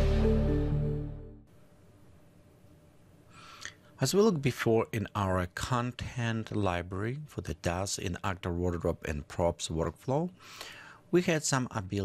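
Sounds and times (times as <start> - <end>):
person breathing in: 3.3 - 3.9, 10.4 - 11.1.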